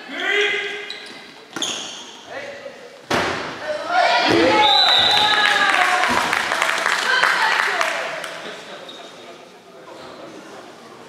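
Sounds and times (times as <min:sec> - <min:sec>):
players shouting: 0:03.6 - 0:08.1.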